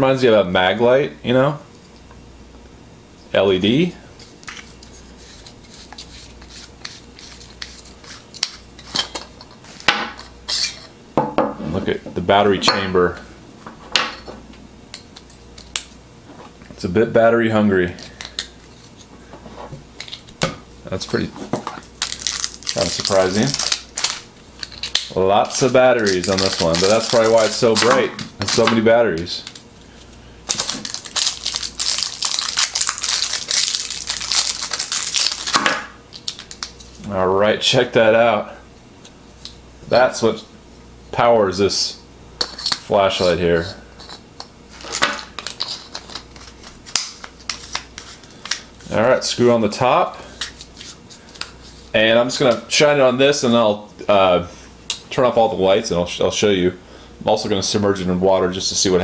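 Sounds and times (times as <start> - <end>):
plastic crinkling by hand: 20.9 - 37.0, 44.7 - 49.4.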